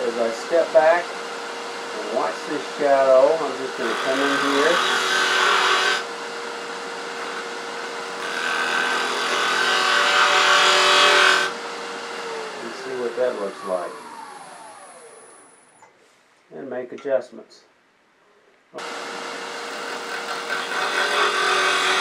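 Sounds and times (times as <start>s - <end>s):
lathe motor hum and whine: 0.0s - 15.7s, 18.8s - 22.0s.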